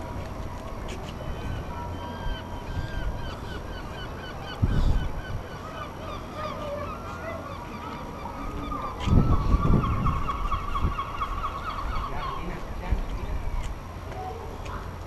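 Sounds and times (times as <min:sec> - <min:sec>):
gulls calling: 0:00.7 - 0:15.0.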